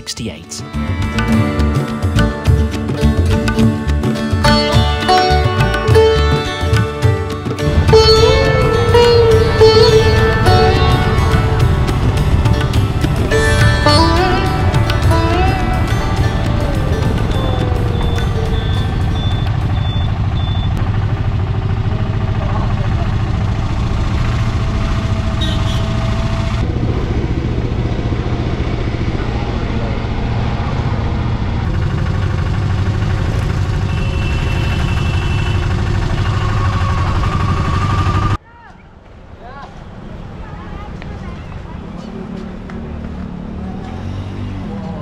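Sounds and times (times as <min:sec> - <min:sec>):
road noise: 0:00.0 - 0:45.0
auto rickshaw engine running: 0:00.8 - 0:38.4.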